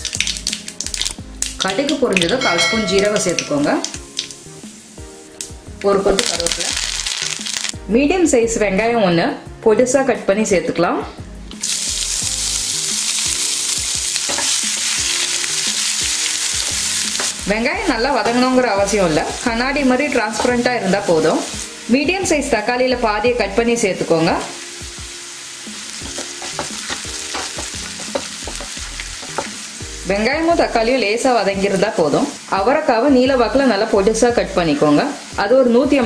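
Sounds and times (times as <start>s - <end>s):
onion sizzling in oil: 0.0s - 7.9s, 11.2s - 36.0s.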